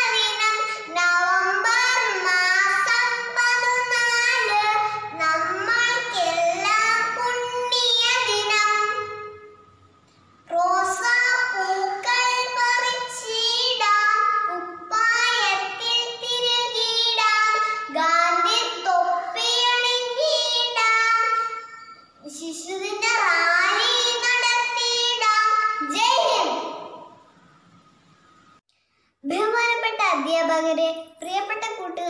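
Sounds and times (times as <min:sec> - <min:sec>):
girl singing: 0:00.0 - 0:09.5, 0:10.5 - 0:27.1, 0:29.2 - 0:32.0.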